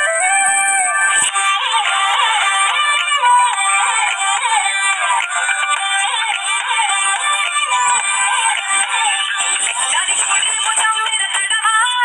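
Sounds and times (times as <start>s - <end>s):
sung melody over dance music: 0.0s - 12.0s.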